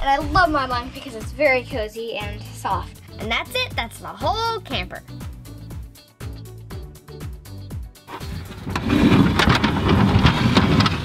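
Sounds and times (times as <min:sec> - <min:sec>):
background music with steady beat: 0:00.0 - 0:08.7
metal ladder dragged across wood floor: 0:08.1 - 0:11.0.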